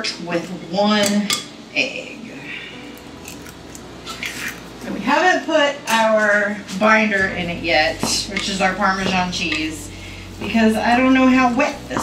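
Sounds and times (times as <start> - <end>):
eggshell crackling: 2.9 - 4.9.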